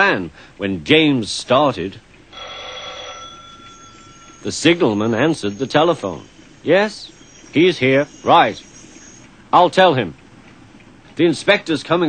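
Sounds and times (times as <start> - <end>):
telephone bell ringing: 2.3 - 6.4.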